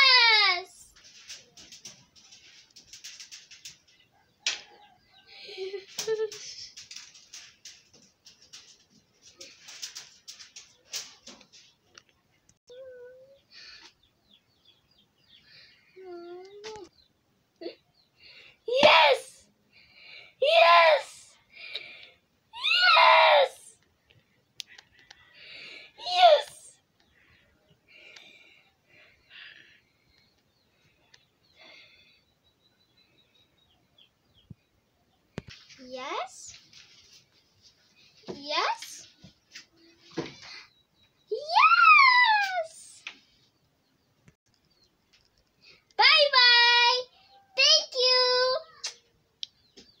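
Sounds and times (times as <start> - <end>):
girl screaming: 18.7 - 19.4, 20.4 - 21.2, 22.6 - 23.7, 26.0 - 26.7, 41.3 - 42.9
small clicks: 44.5 - 45.9.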